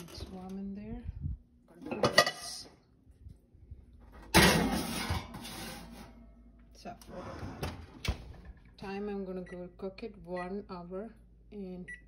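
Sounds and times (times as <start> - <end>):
metal pan scraping oven rack: 4.3 - 6.2.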